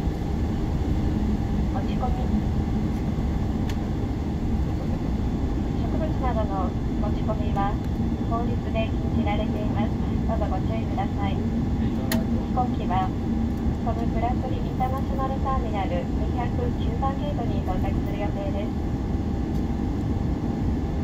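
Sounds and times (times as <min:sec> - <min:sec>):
aircraft engine rumble: 0:00.0 - 0:21.0
faint steady hum: 0:00.0 - 0:21.0
people talking: 0:01.8 - 0:02.5, 0:05.7 - 0:13.2, 0:13.8 - 0:18.7.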